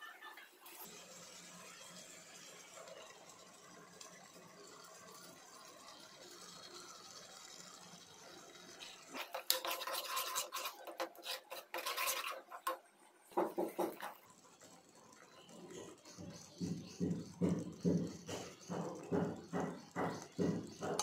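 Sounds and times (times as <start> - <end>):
ladle scraping a pot: 8.7 - 14.8.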